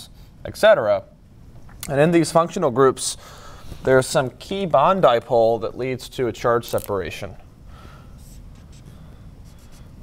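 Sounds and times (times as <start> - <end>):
marker scratching on whiteboard: 8.2 - 10.0.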